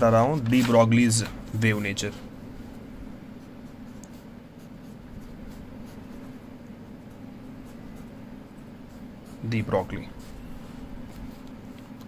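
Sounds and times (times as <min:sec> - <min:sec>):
pen scratching on paper: 0:00.2 - 0:12.0.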